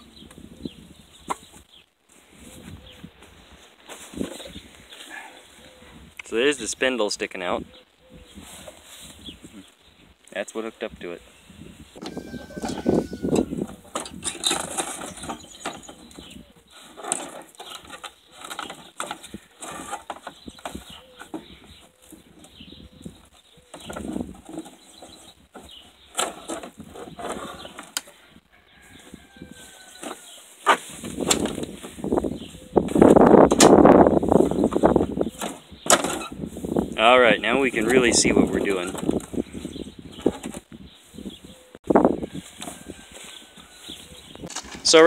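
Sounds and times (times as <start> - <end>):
rustling noise: 0.3 - 6.2, 8.3 - 10.2, 11.3 - 45.0
knocks rattles and scrapes: 12.0 - 22.6, 23.2 - 28.1, 30.0 - 40.7.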